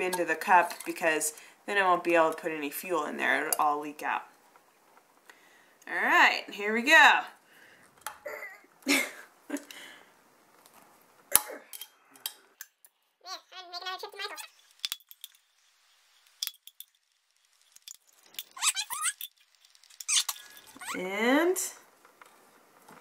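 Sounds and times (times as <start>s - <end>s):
drawn-out squeak: 18.3s - 21.1s.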